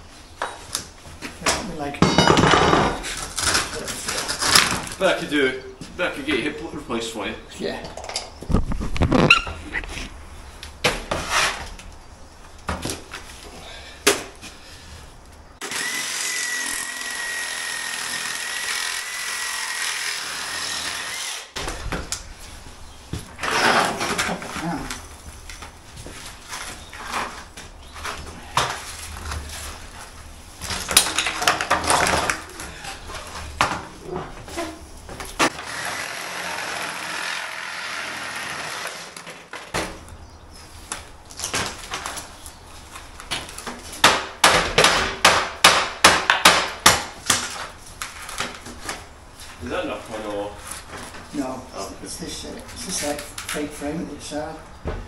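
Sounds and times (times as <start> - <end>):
reciprocating saw cutting wood: 15.6 - 21.6, 23.4 - 24.1, 35.4 - 39.3.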